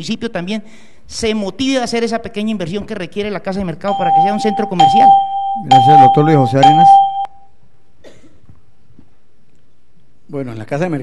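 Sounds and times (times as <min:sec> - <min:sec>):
electronic beep tone: 0:03.9 - 0:07.5.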